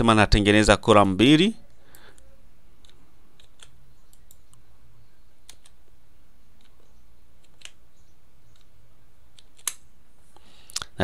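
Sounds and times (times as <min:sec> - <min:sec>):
keyboard keystrokes: 0:02.8 - 0:04.6, 0:05.4 - 0:05.8, 0:07.4 - 0:07.8.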